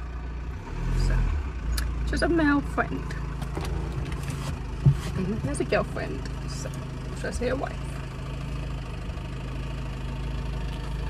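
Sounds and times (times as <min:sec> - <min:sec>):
low vehicle rumble: 0:00.0 - 0:11.0.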